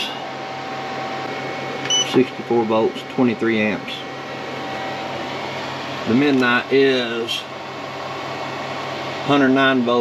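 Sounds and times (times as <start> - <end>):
cooling fan hiss: 0.0 - 10.0
electrical hum: 0.0 - 10.0
short high beep: 1.9 - 2.2.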